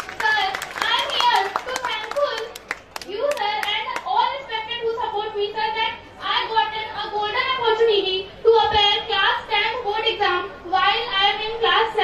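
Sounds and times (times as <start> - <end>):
audience hand claps: 0.0 - 3.7
girl speaking into a microphone: 0.0 - 12.0.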